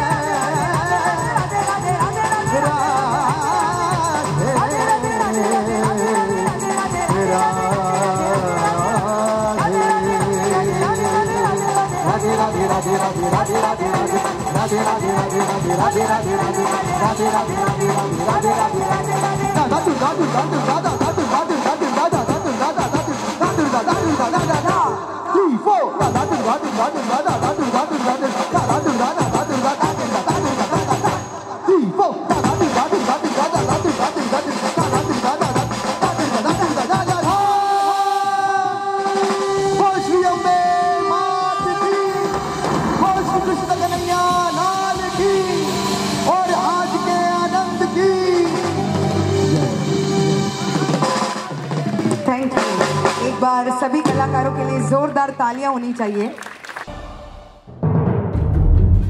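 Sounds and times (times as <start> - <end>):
fast drumming on drum kit: 0.0 - 24.9, 26.0 - 31.3, 32.3 - 37.6, 50.8 - 54.4
sung melodic lines: 0.0 - 25.2, 32.3 - 51.7
live band music: 0.0 - 59.0.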